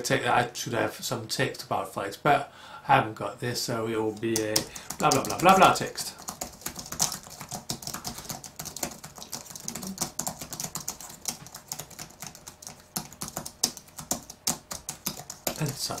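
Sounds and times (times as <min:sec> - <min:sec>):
typing on computer keyboard: 0:04.2 - 0:16.0.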